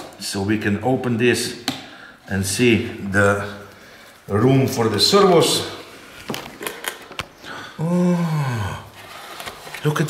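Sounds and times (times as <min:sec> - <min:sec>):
man saying oh: 0:07.8 - 0:08.9.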